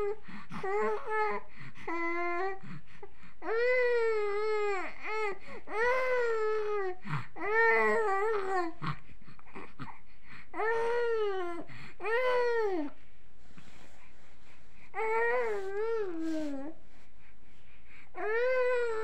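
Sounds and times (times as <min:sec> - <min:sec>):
infant crying: 0:03.4 - 0:08.8, 0:10.6 - 0:12.9, 0:15.0 - 0:16.7, 0:18.2 - 0:19.0.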